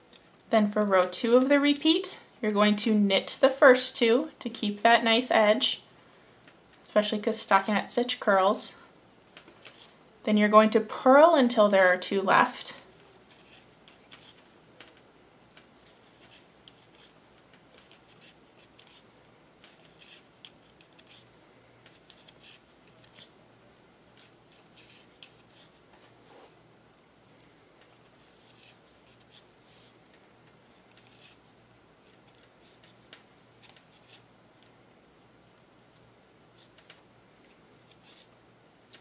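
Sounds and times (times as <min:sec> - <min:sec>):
yarn rubbing: 0:10.9 - 0:34.3.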